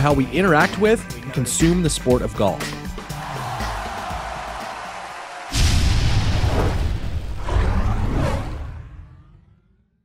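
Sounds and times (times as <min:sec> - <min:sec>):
whoosh: 0:05.5 - 0:09.8.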